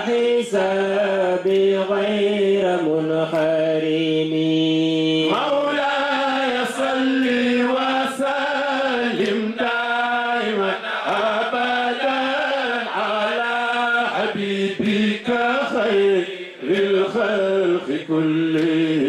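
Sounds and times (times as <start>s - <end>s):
men chanting a religious song: 0.0s - 19.0s.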